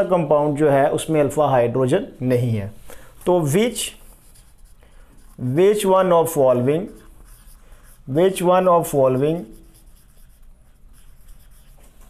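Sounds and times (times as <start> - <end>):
marker rubbing on whiteboard: 3.3 - 12.0.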